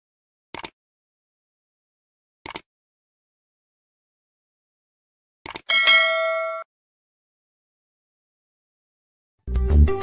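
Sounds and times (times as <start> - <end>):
quick clicks: 0.5 - 0.8, 2.4 - 2.7, 5.4 - 5.7
notification bell ding: 5.7 - 6.7.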